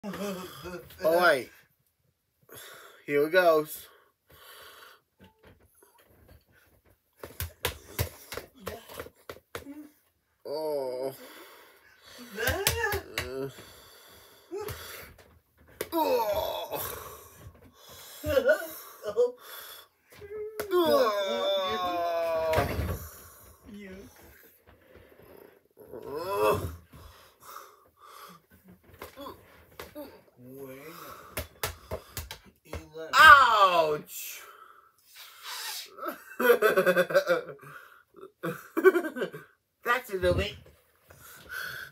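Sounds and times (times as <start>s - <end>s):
breathing: 2.5s - 3.1s, 3.9s - 5.2s, 11.1s - 12.4s, 13.5s - 15.3s, 17.3s - 18.3s, 19.4s - 20.1s, 24.6s - 25.6s, 26.9s - 28.6s, 30.8s - 32.4s, 34.4s - 35.7s, 37.6s - 38.2s, 41.1s - 41.9s.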